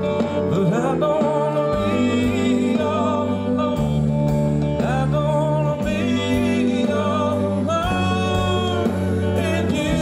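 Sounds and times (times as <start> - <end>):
band with guitar bass and drums: 0.0 - 10.0
man singing: 0.0 - 10.0.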